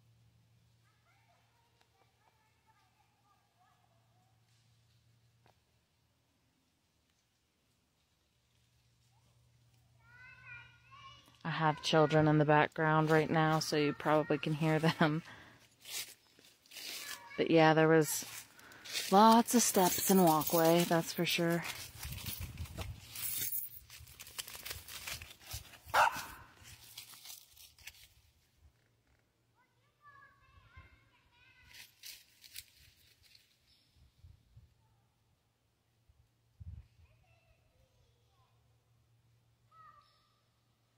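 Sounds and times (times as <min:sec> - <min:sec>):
small dog barking: 0:25.9 - 0:26.5.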